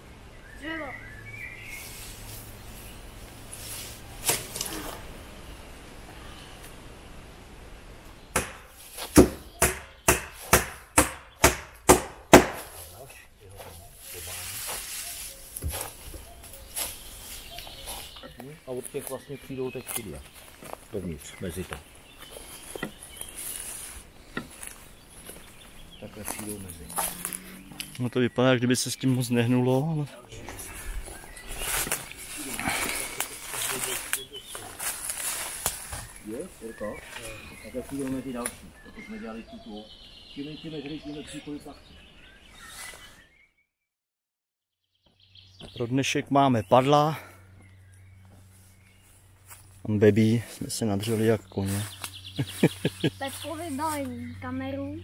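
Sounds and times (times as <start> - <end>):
footsteps in dry leaves: 1.6 - 5.2, 12.6 - 28.1, 29.0 - 38.8, 48.2 - 54.4
rustling: 1.6 - 5.5, 12.6 - 28.1, 30.0 - 38.7
axe chopping wood: 8.3 - 12.8.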